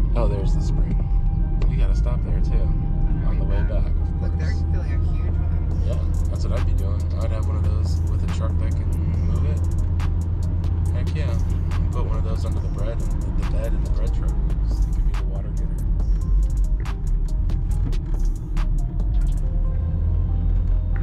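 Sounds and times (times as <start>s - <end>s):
car engine and road rumble: 0.0s - 21.0s
music with voice: 0.0s - 21.0s.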